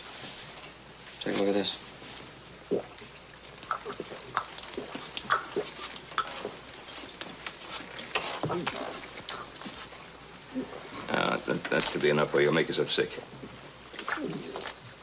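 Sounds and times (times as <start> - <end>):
water splashing and dripping: 2.7 - 10.3, 11.1 - 15.0
man gulping and slurping water: 2.7 - 11.2.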